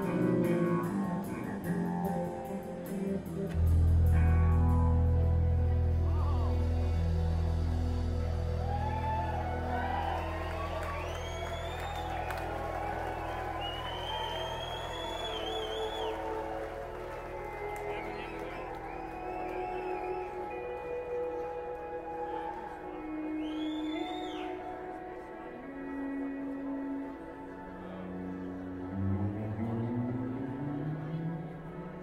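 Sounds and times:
crowd cheering and whistling: 8.1s - 26.0s.

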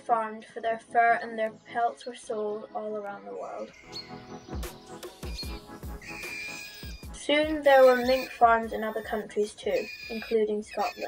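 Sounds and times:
birdsong: 0.1s - 11.0s
music with steady beat: 3.8s - 9.0s.

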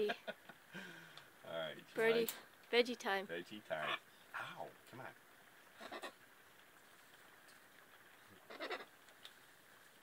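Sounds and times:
parrot squawk: 8.5s - 8.9s.

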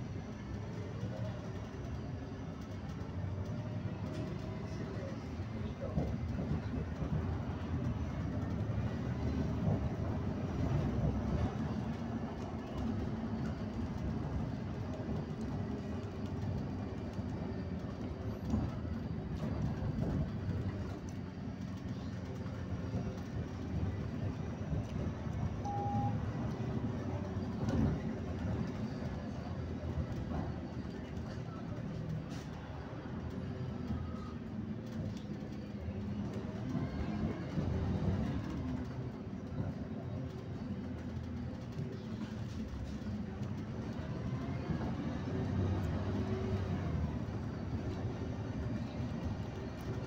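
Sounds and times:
vehicle engine and tyre rumble: 0.0s - 50.0s
short beep: 25.6s - 26.2s.

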